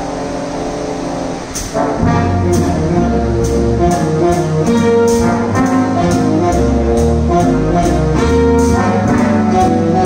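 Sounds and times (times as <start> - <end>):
big band jazz: 0.0 - 10.0.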